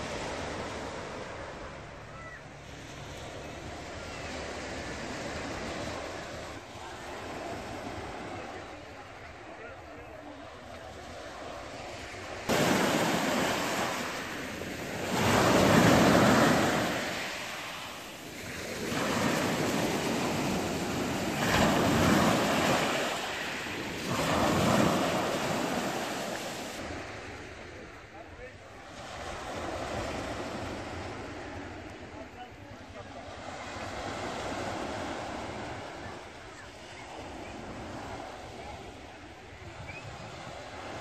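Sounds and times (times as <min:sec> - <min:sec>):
waves washing on shingle beach: 0:00.0 - 0:02.0, 0:02.6 - 0:28.0.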